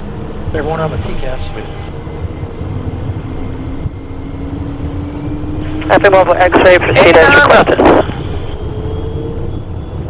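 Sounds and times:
faint high whine: 0.0s - 10.0s
jet engine low rumble: 0.0s - 10.0s.

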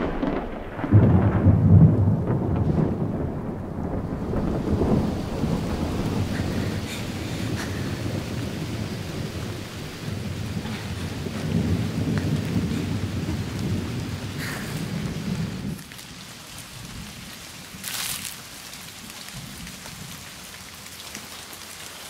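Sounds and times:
low rumble of thunder: 0.0s - 17.9s
heavy rain pouring: 0.0s - 22.0s.

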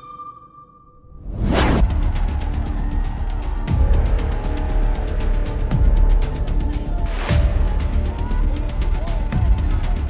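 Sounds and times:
whoosh: 1.1s - 2.0s.

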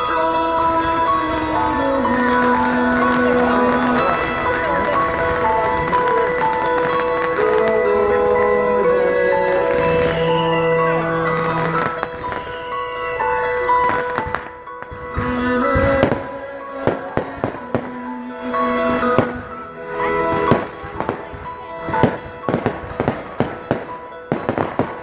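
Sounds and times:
music playing: 0.0s - 25.0s
fireworks popping and cracking: 0.9s - 8.5s, 11.2s - 18.2s, 19.0s - 19.6s, 20.3s - 25.0s.

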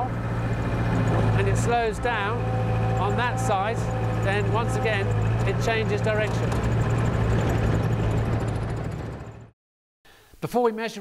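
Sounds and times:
skid-steer vehicle engine droning: 0.0s - 9.5s.

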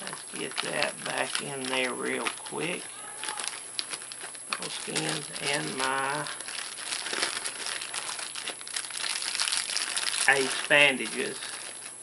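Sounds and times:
packaging crinkling and rustling: 0.0s - 12.0s.

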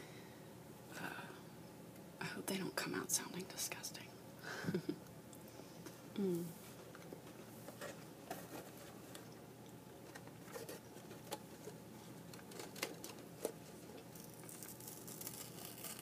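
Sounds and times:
paper crinkling: 7.7s - 9.4s, 10.0s - 16.0s.

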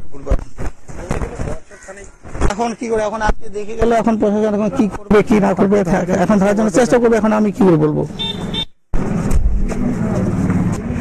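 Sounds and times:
motor vehicle running: 8.0s - 11.0s
short high beeps: 8.2s - 8.8s.

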